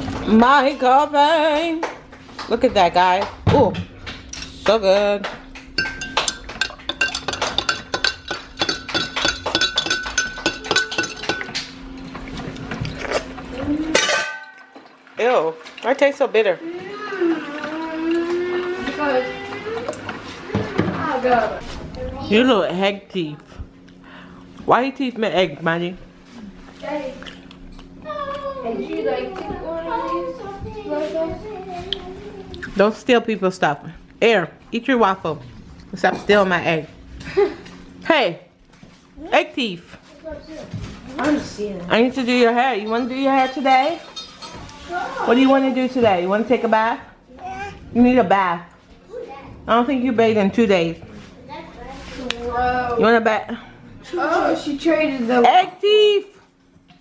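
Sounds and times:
spoon clinking in ceramic mug: 5.8 - 11.6.

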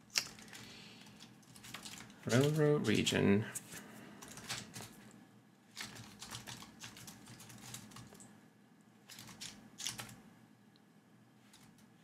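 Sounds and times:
computer keyboard typing: 0.2 - 3.0, 4.2 - 5.0, 5.8 - 8.3, 9.1 - 10.2.

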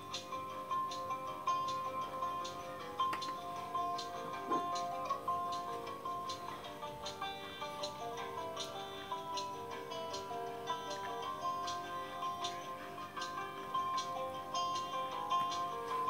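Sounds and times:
held melodic notes: 0.0 - 16.0
light ticking percussion: 0.0 - 16.0.

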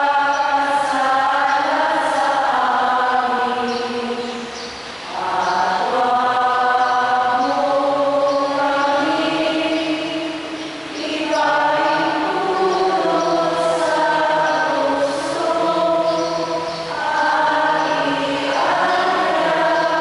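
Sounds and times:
liturgical chant: 0.0 - 20.0.

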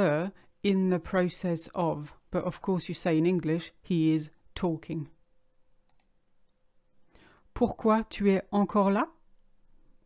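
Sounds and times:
faint steady hum: 0.0 - 10.0
faint click: 5.8 - 6.1.

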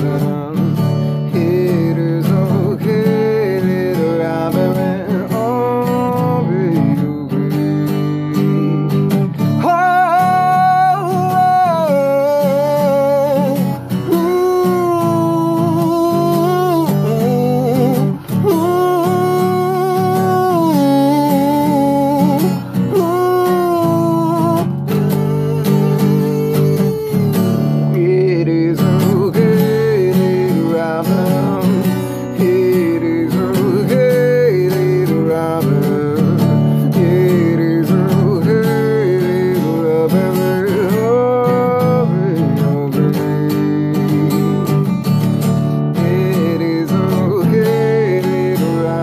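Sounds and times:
acoustic guitar strumming: 0.0 - 49.0
person singing: 0.0 - 49.0.

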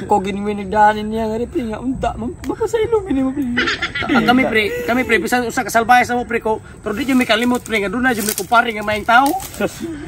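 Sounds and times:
man talking: 4.1 - 9.8.

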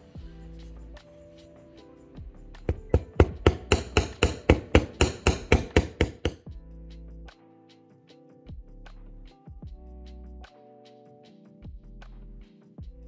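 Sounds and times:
hammer tapping wire on steel block: 2.7 - 6.5.

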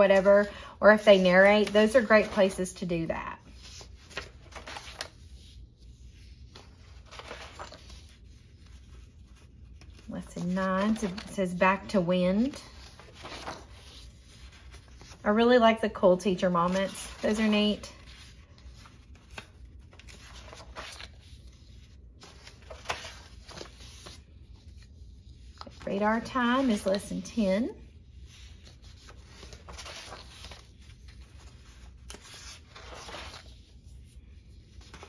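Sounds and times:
woman speaking: 0.0 - 3.5, 10.1 - 12.7, 15.2 - 18.0, 25.8 - 27.8
paper pages rustling: 0.0 - 35.0.

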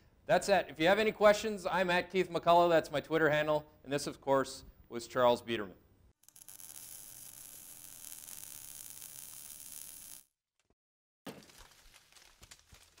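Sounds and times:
irregular crackles and clicks: 6.2 - 10.3.

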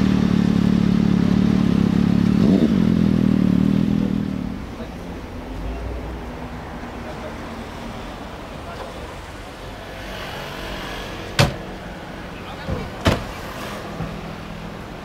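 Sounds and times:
car engine idling: 0.0 - 9.8
sharp knocks: 11.3 - 11.7, 12.7 - 13.3.

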